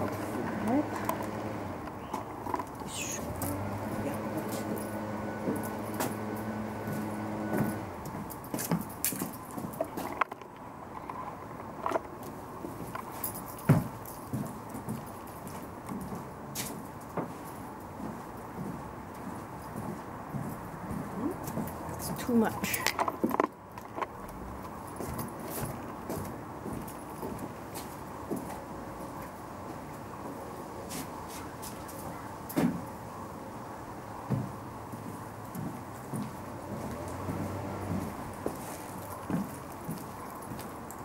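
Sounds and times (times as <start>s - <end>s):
machine humming: 0.0s - 2.0s, 3.0s - 8.0s.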